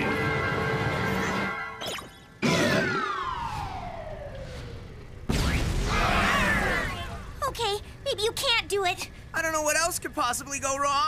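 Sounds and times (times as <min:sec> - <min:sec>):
cartoon boom with swirling tones: 0:05.3 - 0:07.1.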